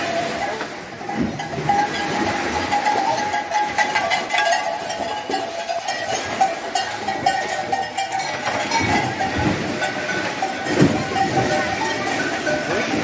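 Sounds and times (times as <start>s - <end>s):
cattle splashing through water: 0.0s - 13.0s
clatter of knocks: 2.8s - 13.0s.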